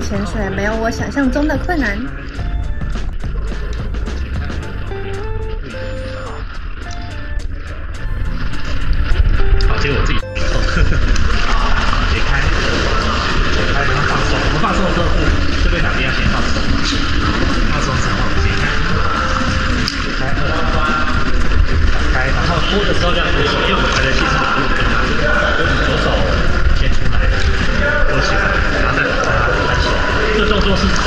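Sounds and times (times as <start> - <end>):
steady low rumble: 0.0 - 31.0.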